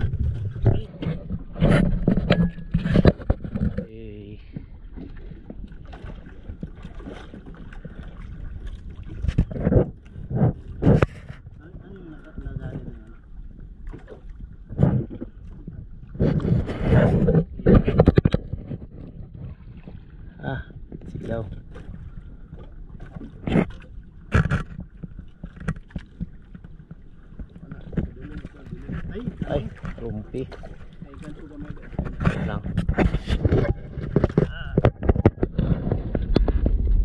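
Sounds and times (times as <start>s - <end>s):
water lapping against boat hull: 0.0s - 37.0s
water slapping and splashing: 0.0s - 37.0s.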